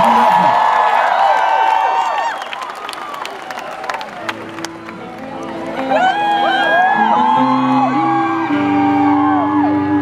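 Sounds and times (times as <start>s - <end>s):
crowd whooping and cheering: 0.0s - 10.0s
live rock band playing: 4.2s - 10.0s.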